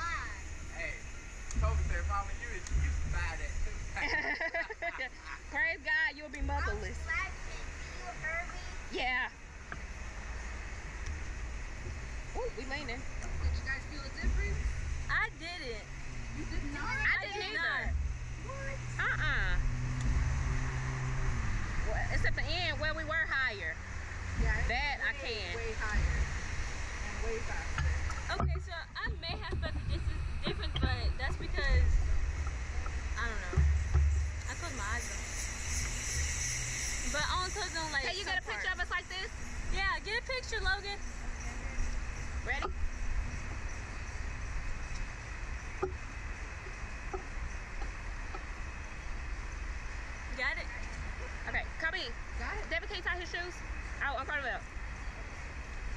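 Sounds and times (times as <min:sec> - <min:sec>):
low motor hum: 0:00.0 - 0:55.9
low outdoor rumble: 0:00.0 - 0:55.9
riders' voices: 0:12.2 - 0:20.9, 0:36.8 - 0:42.9.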